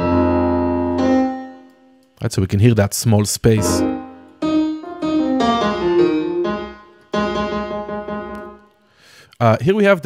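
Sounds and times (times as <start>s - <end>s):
piano notes and chord: 0.0s - 2.2s, 3.5s - 8.8s.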